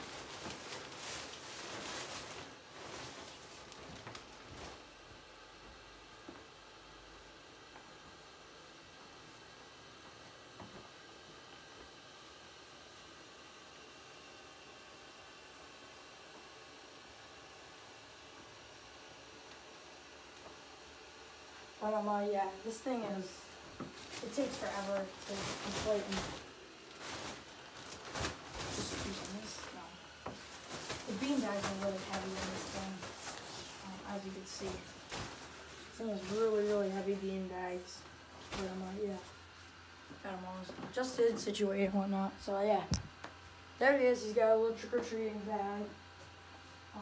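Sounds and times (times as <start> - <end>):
nylon fabric rustling: 0.0 - 5.2, 21.8 - 39.8
small blower fan running: 0.0 - 47.0.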